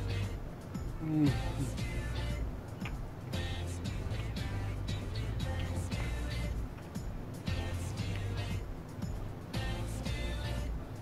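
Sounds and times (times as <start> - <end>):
music with pulsing bass beat: 0.0 - 11.0.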